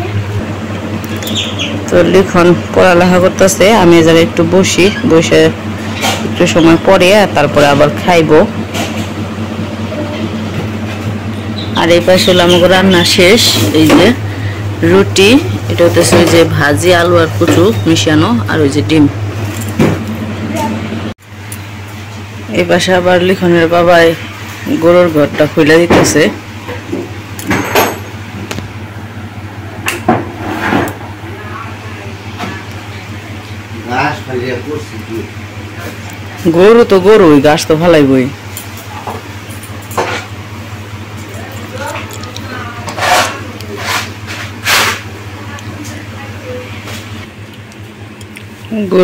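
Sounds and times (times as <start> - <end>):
voices: 0.0 - 21.6, 22.4 - 28.0, 30.8 - 49.0
steady low hum: 0.0 - 49.0.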